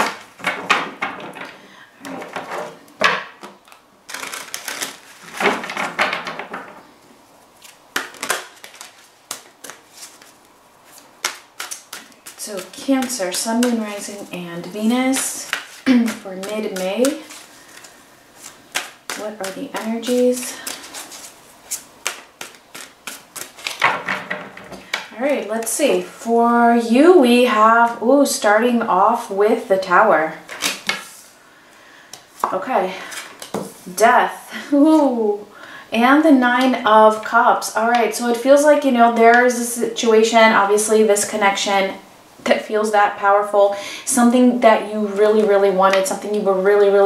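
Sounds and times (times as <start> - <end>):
cards being shuffled: 3.4 - 5.6, 7.6 - 24.0, 30.5 - 31.2.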